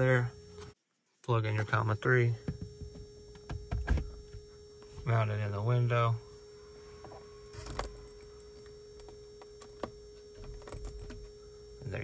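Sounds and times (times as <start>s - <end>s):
faint hum: 0.0s - 12.0s
cable clicks and rustles: 7.5s - 11.4s.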